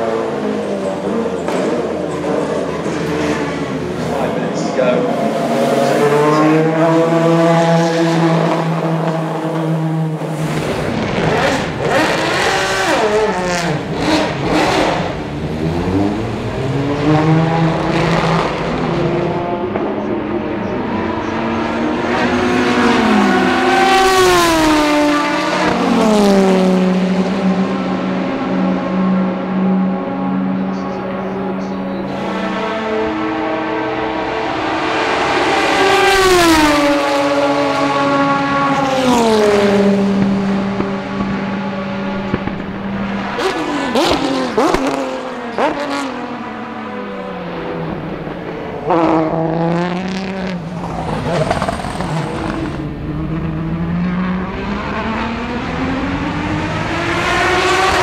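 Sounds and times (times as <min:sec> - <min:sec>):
race car engine revving: 0:00.0 - 0:58.0
race car passing by: 0:00.0 - 0:58.0.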